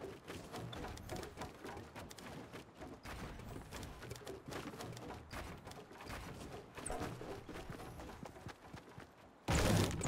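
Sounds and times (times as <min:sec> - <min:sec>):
irregular clicks and knocks: 0:00.0 - 0:08.2.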